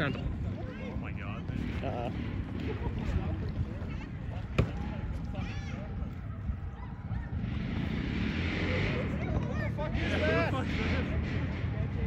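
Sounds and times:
faint distant voices: 0.0 - 12.0
steady low rumble: 0.0 - 12.0.

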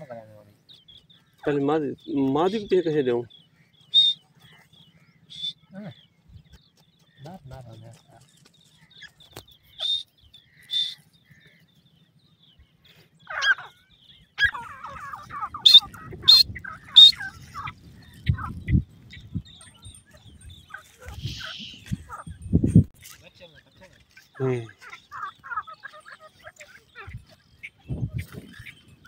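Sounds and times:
rapid chattering bird notes: 0.0 - 11.7, 13.2 - 29.0
birds calling: 0.0 - 29.0.

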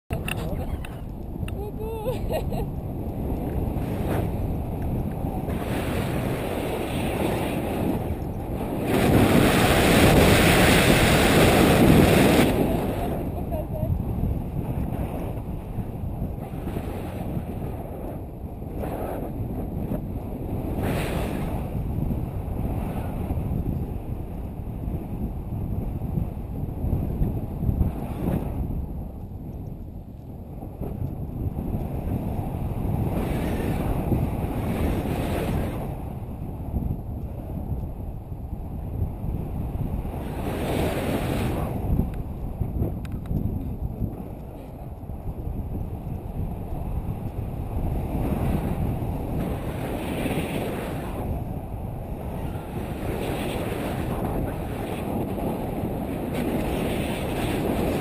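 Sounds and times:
wind rushing over microphone: 0.1 - 58.0.

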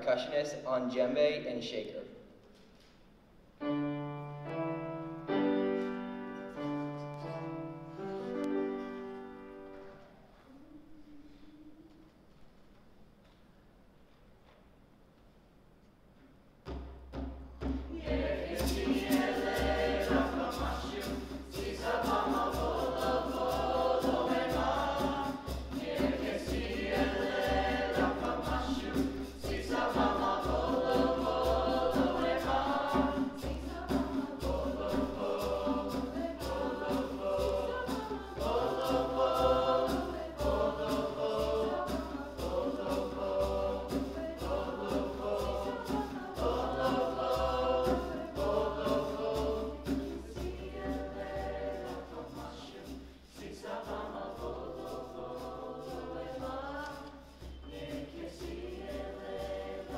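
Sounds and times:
shaker: 16.2 - 59.9
djembe drumming: 16.7 - 55.0
children's choir singing: 17.7 - 59.9.

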